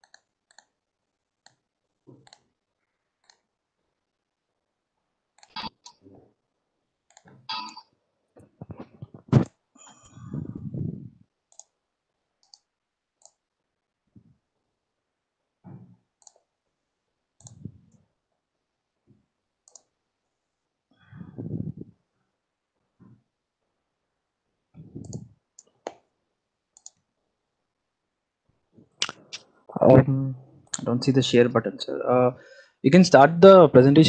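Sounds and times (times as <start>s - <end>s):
computer mouse clicks: 0.0s - 0.8s, 1.4s - 2.5s, 3.2s - 3.5s, 5.4s - 6.0s, 7.1s - 7.8s, 11.5s - 11.8s, 12.4s - 13.4s, 16.2s - 16.5s, 17.4s - 18.0s, 19.6s - 19.9s, 25.0s - 26.0s, 26.8s - 27.1s
microphone handling rumble: 8.6s - 9.5s, 10.2s - 11.2s, 21.2s - 21.9s.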